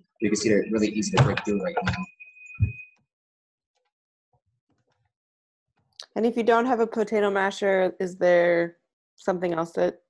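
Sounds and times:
faint high tone: 0.2 - 2.0.

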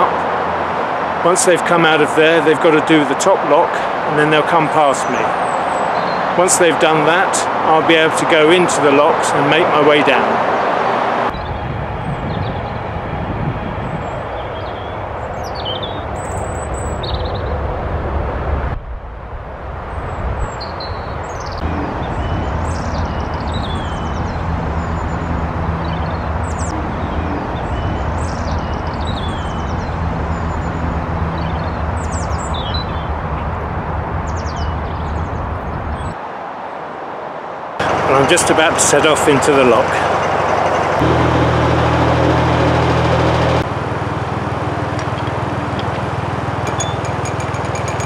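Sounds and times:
motorway traffic rumble: 0.0 - 48.0
small birds chirping: 20.4 - 33.2
low engine hum: 21.6 - 34.2, 37.8 - 48.0.

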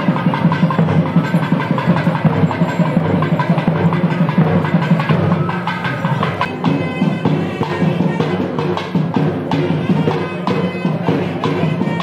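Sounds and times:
drum beating fast rhythm: 0.0 - 12.0
reedy wind instrument: 0.0 - 12.0.

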